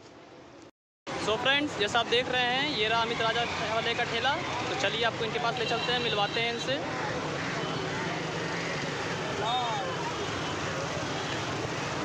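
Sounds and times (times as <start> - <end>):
motorbike and scooter traffic: 0.0 - 12.0
crowd chatter: 6.7 - 12.0.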